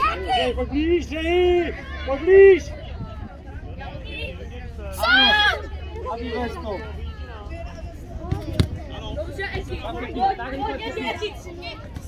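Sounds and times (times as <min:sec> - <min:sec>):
people chattering and calling out: 0:00.0 - 0:12.0.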